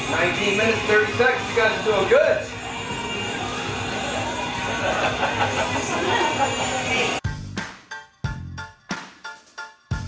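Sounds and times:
background music: 0.0 - 10.0
crowd chatter: 3.4 - 7.2.

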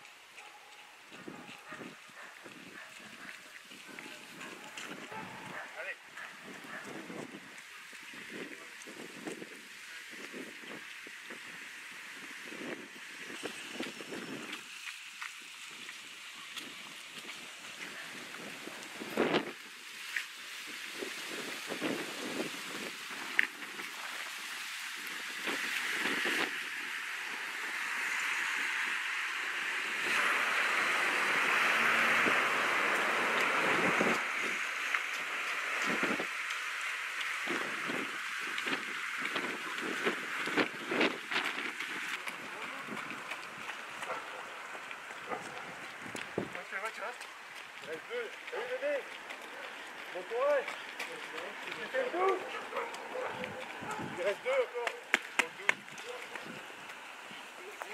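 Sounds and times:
wind buffeting microphone: 1.1 - 11.6, 20.8 - 24.0, 31.2 - 36.4, 37.3 - 46.6, 50.6 - 57.6.

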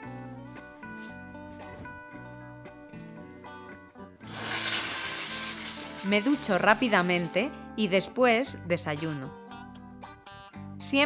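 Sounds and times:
shower head spraying water: 4.3 - 7.5.

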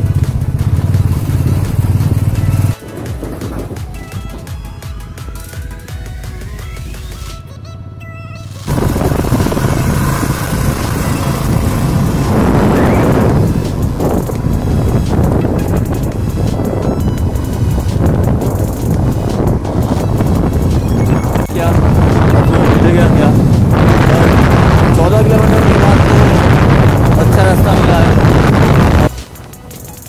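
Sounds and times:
wind rushing over microphone: 0.0 - 4.5, 8.7 - 29.2
motorcycle engine running: 0.0 - 30.0.

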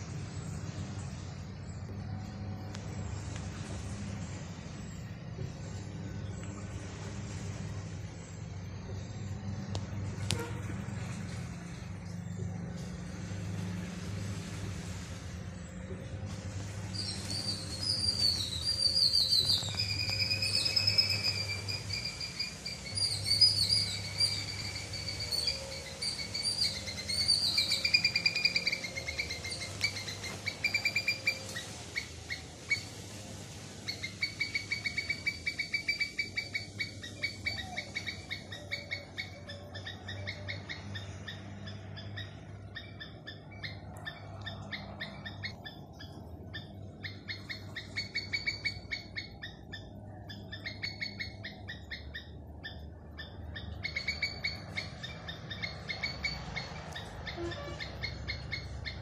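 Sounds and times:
high-pitched bird-like calls: 16.9 - 33.0, 33.8 - 59.0.

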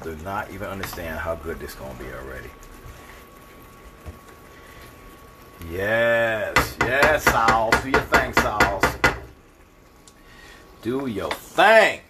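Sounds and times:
sauce simmering in a skillet: 0.0 - 12.0
wooden spatula stirring: 0.1 - 9.4
spatula knock: 6.6 - 9.3.

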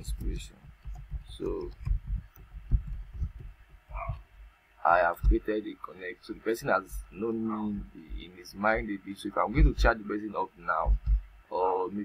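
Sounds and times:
computer keyboard keystrokes: 0.0 - 3.6.

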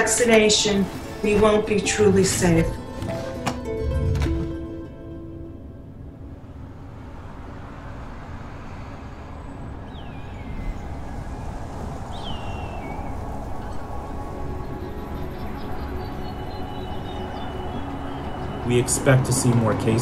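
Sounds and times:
city traffic noise: 0.0 - 20.0
faint music: 0.0 - 20.0.

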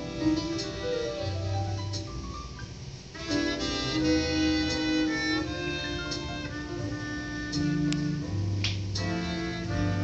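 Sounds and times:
band accompaniment: 0.0 - 2.1, 3.1 - 10.0
trombone melody: 3.1 - 10.0.

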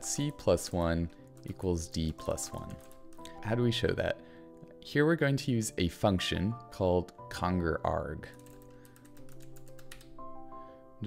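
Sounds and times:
soft background music: 0.0 - 11.0
computer keyboard typing: 0.1 - 3.4, 8.3 - 10.2.

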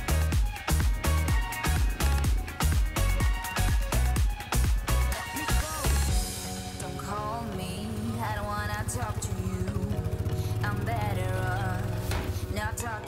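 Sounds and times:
atv engine running: 0.0 - 13.0
pop song: 0.0 - 13.0.

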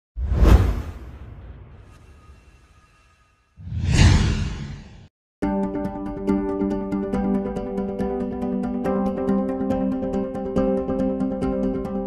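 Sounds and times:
whoosh sound effect: 3.6 - 5.1.

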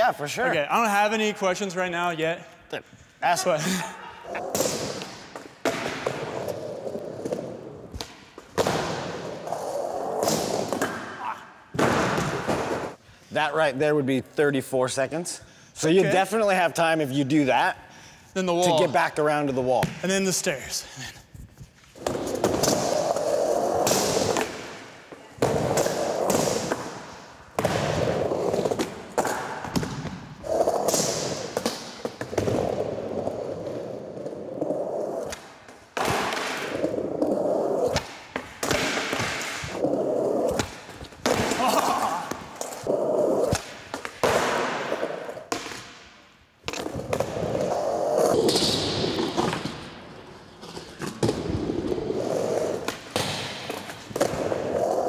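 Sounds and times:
skateboard wheels rolling: 4.4 - 11.0, 21.9 - 27.0, 27.6 - 38.5, 39.1 - 41.4, 42.6 - 45.5, 46.7 - 55.0.

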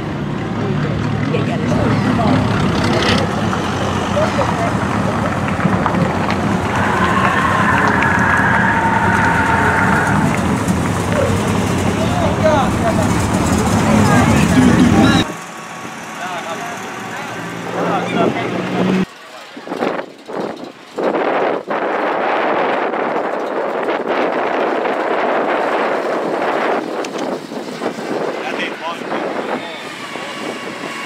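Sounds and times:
cars driving slowly past: 0.0 - 21.5
wind buffeting microphone: 1.4 - 15.3, 18.2 - 31.0.

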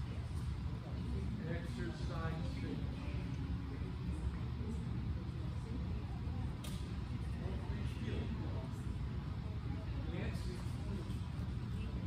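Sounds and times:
faint distant voices: 0.0 - 12.0
low rumble of room noise: 0.0 - 12.0.

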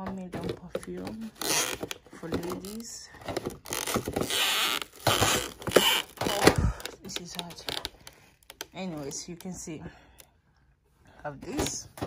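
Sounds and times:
rustling of plastic and paper filler: 0.0 - 8.7.

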